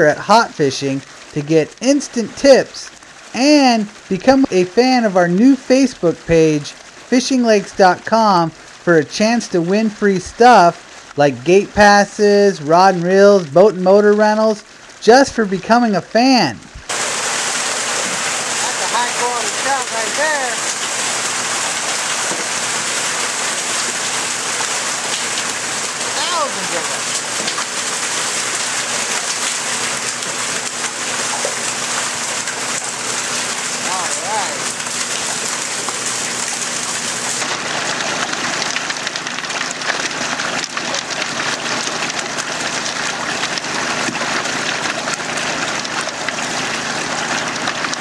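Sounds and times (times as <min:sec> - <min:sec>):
water rushing and splashing: 0:00.0 - 0:48.0
fish churning in water: 0:16.9 - 0:48.0.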